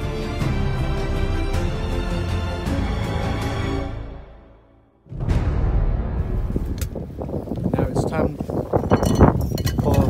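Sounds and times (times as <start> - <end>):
strong wind buffeting microphone: 6.1 - 10.0.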